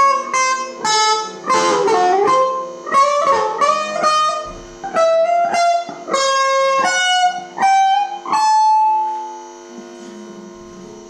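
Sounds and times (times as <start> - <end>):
electric guitar note: 0.0 - 11.0
guitar amplifier mains hum: 0.0 - 11.0.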